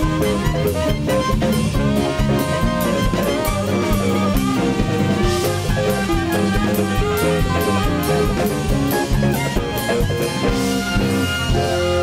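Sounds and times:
drum-kit beat: 0.0s - 12.0s
trumpet clarinet and saxophone melody: 0.0s - 12.0s.

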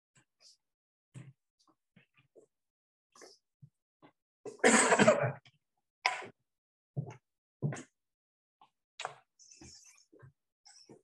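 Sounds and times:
man coughing: 4.6s - 5.4s.

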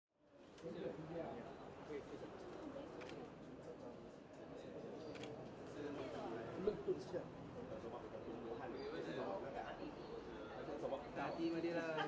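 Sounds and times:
murmur of voices: 0.6s - 12.0s.

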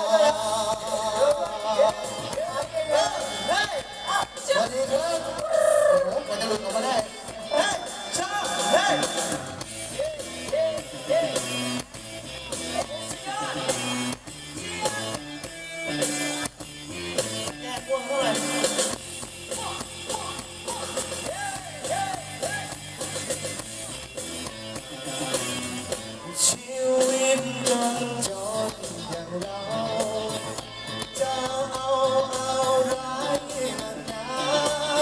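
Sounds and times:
man singing into a microphone: 0.0s - 11.5s, 17.6s - 18.8s, 19.5s - 22.8s, 26.2s - 35.0s
live band music: 0.0s - 35.0s.

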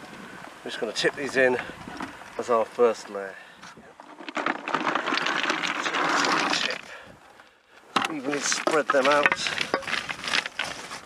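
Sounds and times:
stones clattering into a pit: 3.8s - 7.0s, 7.9s - 11.0s.

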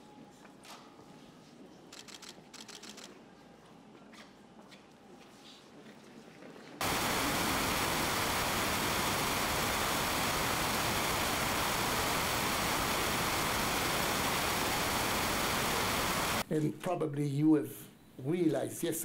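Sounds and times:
steady static hiss: 6.8s - 16.6s.

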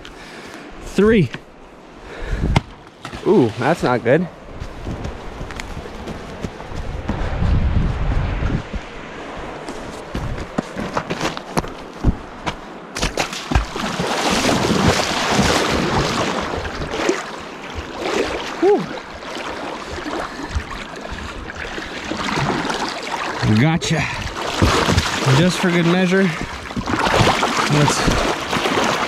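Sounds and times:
water splashing around legs: 13.0s - 29.0s.

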